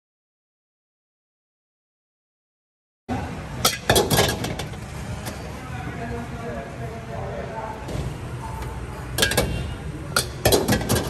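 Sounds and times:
road traffic rumble: 3.1s - 11.0s.

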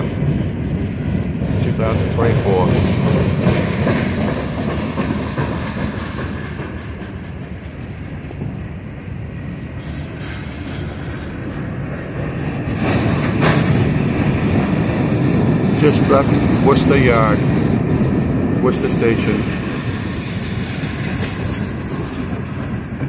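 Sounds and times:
steel wheels rumbling on rail: 0.0s - 23.0s
high wheel squeal: 12.6s - 13.3s.

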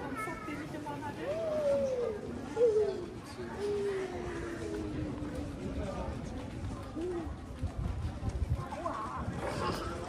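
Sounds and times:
passers-by talking: 0.0s - 10.0s.

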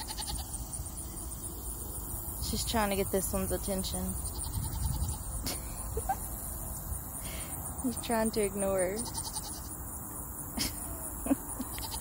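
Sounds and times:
goat bleating: 0.0s - 0.6s, 4.3s - 5.3s, 9.0s - 9.7s, 11.6s - 12.0s
insects chirping: 0.0s - 12.0s.

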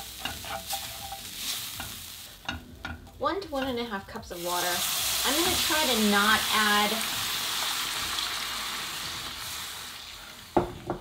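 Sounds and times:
sauce sizzling in a hot pan: 0.0s - 11.0s
wooden spoon knocking on pan: 10.6s - 11.0s.

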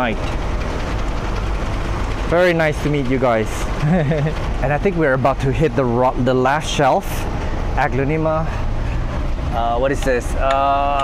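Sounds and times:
speech: 0.0s - 0.2s, 2.3s - 3.6s, 4.6s - 8.6s, 9.5s - 11.0s.

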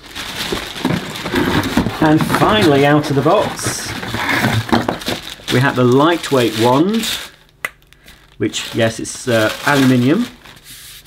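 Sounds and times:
cardboard inserts rustling: 0.0s - 11.0s
plastic bag crinkling: 0.0s - 11.0s.

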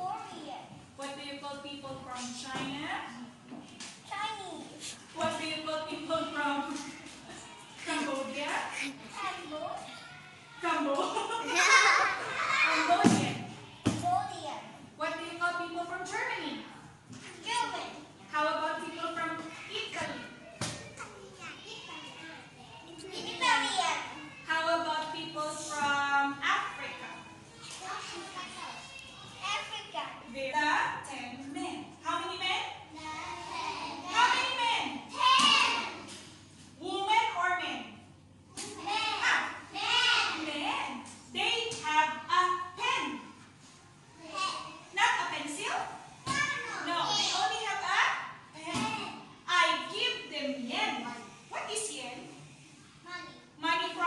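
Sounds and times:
children talking: 0.0s - 50.3s
children chattering: 6.5s - 14.6s, 19.5s - 24.6s, 26.7s - 30.2s, 32.8s - 36.1s, 46.4s - 47.7s.

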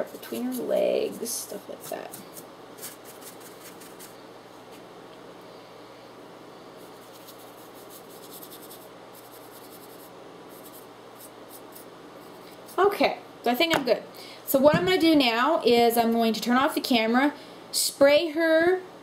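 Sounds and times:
soft scratchy brush strokes: 0.0s - 4.8s, 6.7s - 13.0s
steady low hum: 0.0s - 19.0s.

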